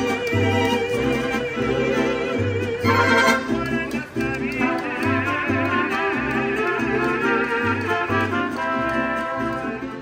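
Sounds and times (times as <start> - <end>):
violins with vibrato: 0.0 - 3.9
strummed guitar: 0.0 - 10.0.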